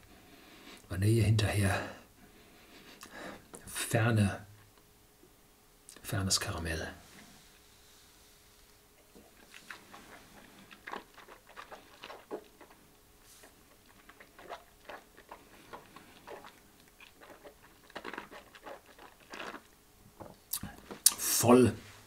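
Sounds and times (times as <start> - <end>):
wet mouth clicks and lip smacks: 9.2 - 12.8, 13.7 - 19.7, 20.5 - 21.2.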